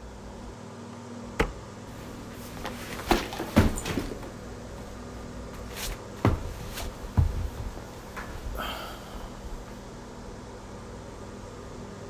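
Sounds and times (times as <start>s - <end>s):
fabric swishing: 5.6s - 8.2s.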